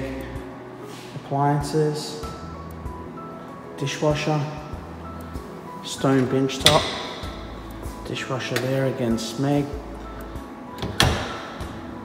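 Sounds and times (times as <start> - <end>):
faint background music: 0.0 - 12.0
door shutting: 10.7 - 11.6.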